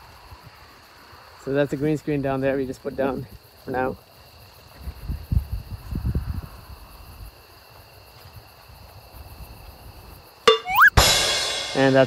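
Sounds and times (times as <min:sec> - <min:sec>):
crickets chirring: 0:00.0 - 0:10.8
wind buffeting microphone: 0:04.8 - 0:07.2
rising whistle-like sweep: 0:10.5 - 0:11.0.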